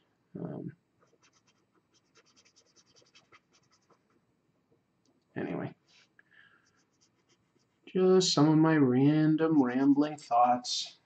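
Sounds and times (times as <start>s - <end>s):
pen scratching on paper: 1.0s - 4.1s, 6.6s - 7.7s.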